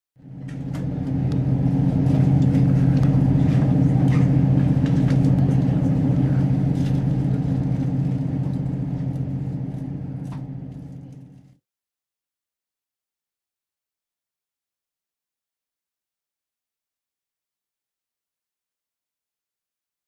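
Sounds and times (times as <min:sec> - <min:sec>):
low rumbling drone: 0:00.2 - 0:11.6.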